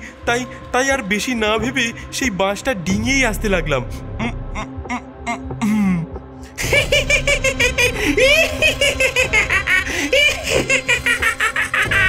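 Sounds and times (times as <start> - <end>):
cartoon ghost laughing: 6.6 - 12.0.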